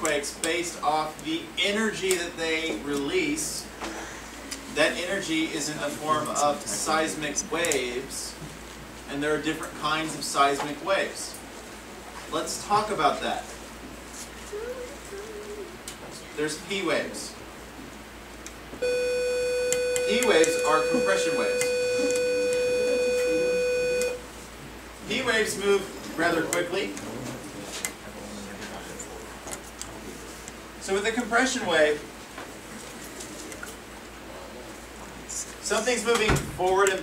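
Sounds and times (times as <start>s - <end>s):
soft hum: 13.3s - 16.4s, 17.3s - 30.9s.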